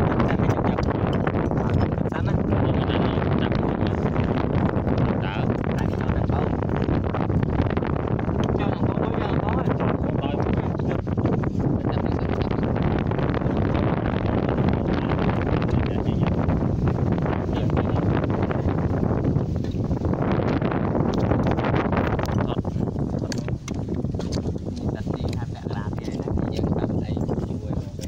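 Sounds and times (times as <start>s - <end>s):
wind buffeting microphone: 0.0s - 28.0s.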